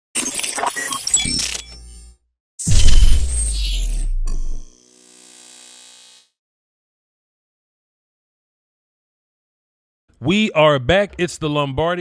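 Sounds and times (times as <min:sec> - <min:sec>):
short hit: 0:02.7 - 0:04.6.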